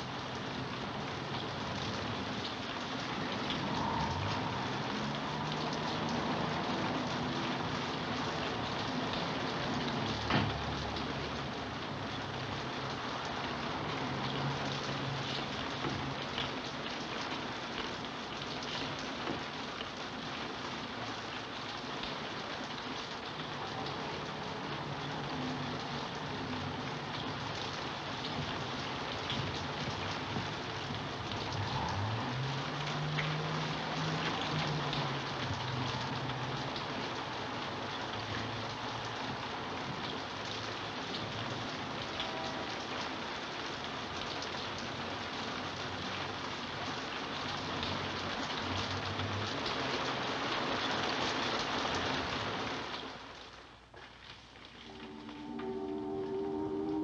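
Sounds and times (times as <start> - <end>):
heavy rain pattering: 0.0 - 57.0
water drips: 1.2 - 11.4
faint low drone: 54.8 - 57.0.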